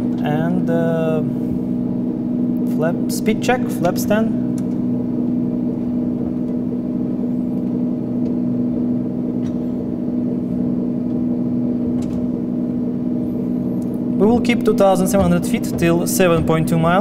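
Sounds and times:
piston aircraft engine drone: 0.0 - 17.0.

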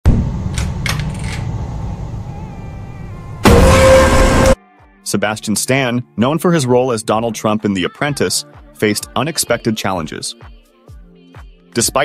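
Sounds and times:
loud distorted blast: 3.4 - 4.6.

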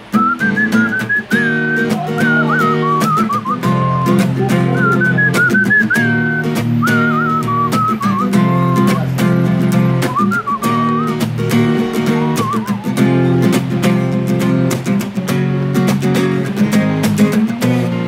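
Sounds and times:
strummed acoustic guitar chords: 0.0 - 18.0
man whistling a melody: 0.1 - 13.8.

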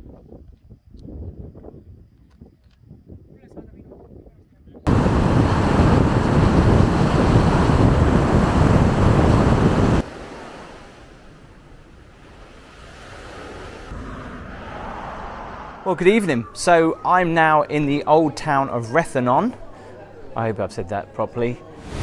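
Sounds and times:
wind rushing over microphone: 0.0 - 17.0
open-air wind: 0.0 - 22.0.

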